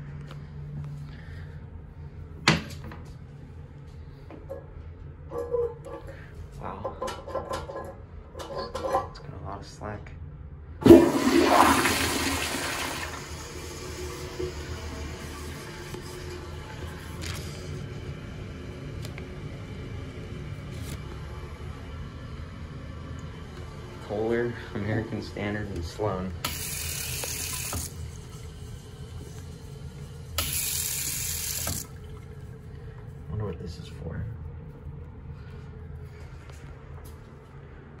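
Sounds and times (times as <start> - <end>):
toilet flushing: 10.8 - 32.7
faucet water running into sink: 10.9 - 17.8, 24.1 - 32.4.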